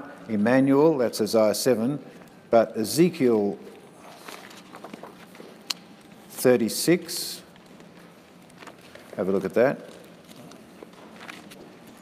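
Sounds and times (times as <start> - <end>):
pages being leafed through: 4.0 - 6.4, 7.5 - 12.0.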